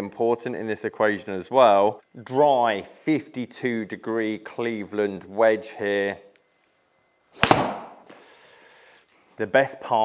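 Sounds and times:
ball smacking simulator screen: 0:07.3 - 0:08.2
golf club striking ball: 0:07.4 - 0:08.0.

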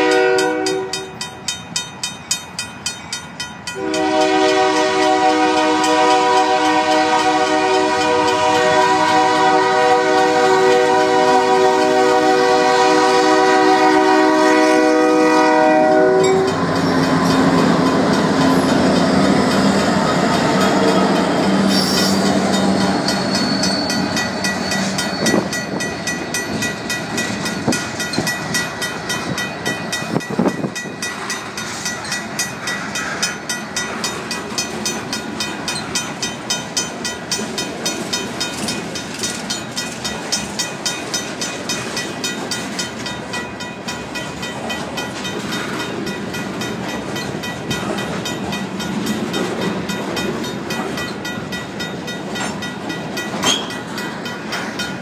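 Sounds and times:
locomotive horn: 0:00.0 - 0:01.2, 0:03.8 - 0:18.7
crossing bell ringing: 0:00.0 - 0:55.0
train wheels clattering on rails: 0:00.0 - 0:55.0.

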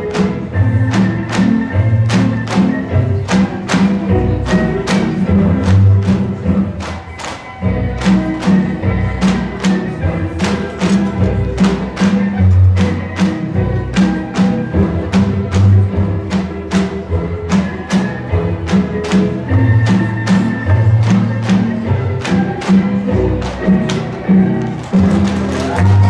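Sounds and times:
recorded folk music: 0:00.0 - 0:26.0.

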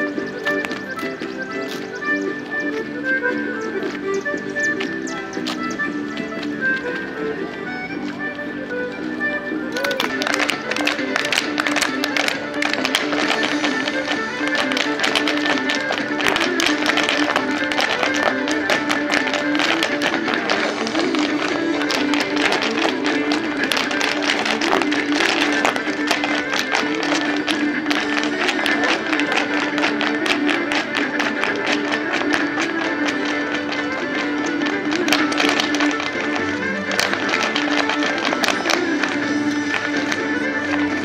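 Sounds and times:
dance shoes tapping on pavement: 0:00.0 - 0:41.0
lively dance music: 0:00.0 - 0:41.0.

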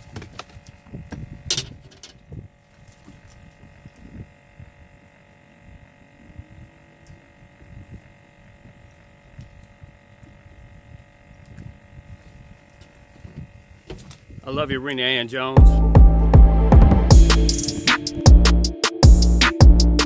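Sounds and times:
faint steady hum: 0:00.0 - 0:14.5.

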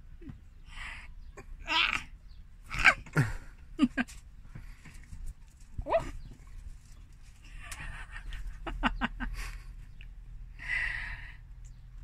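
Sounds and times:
sharp breaths: 0:09.4 - 0:11.8.

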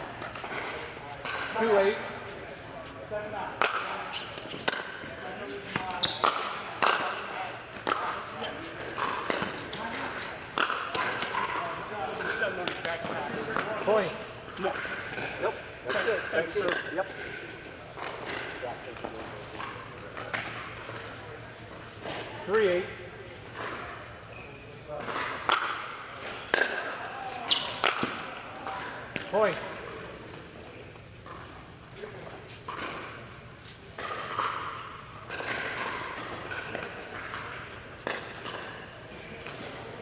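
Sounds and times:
ball bouncing on hard court: 0:05.7 - 0:11.6, 0:35.3 - 0:38.7
paddles hitting plastic ball: 0:10.6 - 0:11.6, 0:35.3 - 0:37.4, 0:38.0 - 0:38.6.

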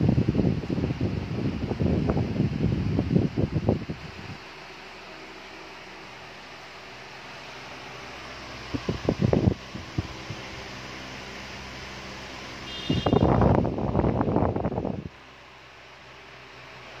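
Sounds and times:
wind buffeting microphone: 0:00.0 - 0:04.5, 0:08.6 - 0:10.6, 0:12.9 - 0:15.2
stand fan humming: 0:00.0 - 0:17.0.

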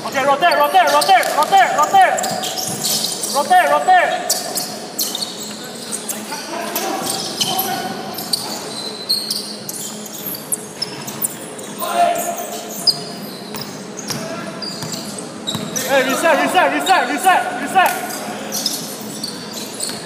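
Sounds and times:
players calling out: 0:00.0 - 0:10.1, 0:11.6 - 0:19.8
sneakers squeaking: 0:00.0 - 0:20.0
basketball bouncing: 0:02.2 - 0:03.0, 0:13.5 - 0:15.8.

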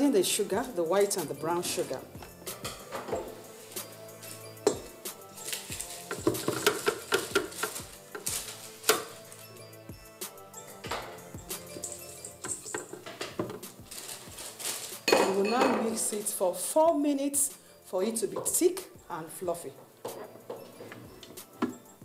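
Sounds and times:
background music: 0:00.0 - 0:22.0
utensils clinking on a steel bowl: 0:04.2 - 0:09.4, 0:10.8 - 0:16.3.

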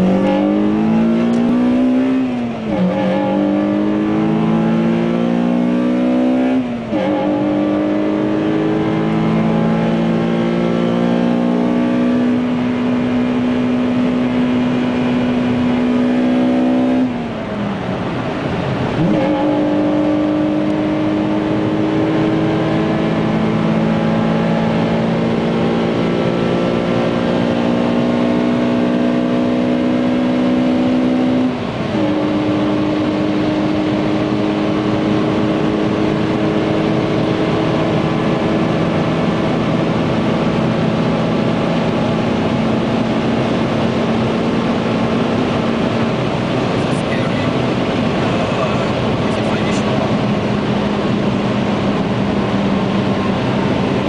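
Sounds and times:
car engine accelerating hard: 0:00.0 - 0:54.0
road noise: 0:00.0 - 0:54.0.

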